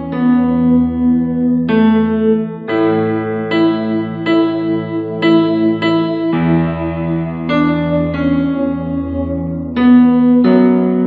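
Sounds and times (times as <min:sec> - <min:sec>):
electronic keyboard chords: 0:00.0 - 0:11.0.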